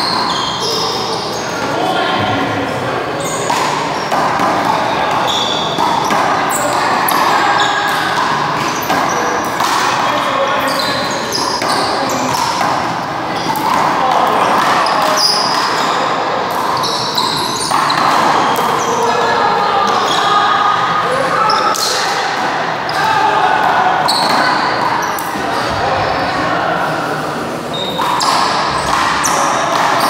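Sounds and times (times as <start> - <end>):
sneaker squeaks: 0.0 - 2.1, 3.1 - 22.3, 23.8 - 30.0.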